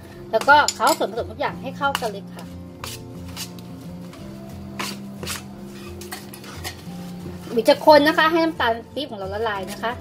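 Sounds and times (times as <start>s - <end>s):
metal spoon scraping a pan: 0.4s - 1.2s, 1.9s - 3.8s, 4.7s - 7.6s.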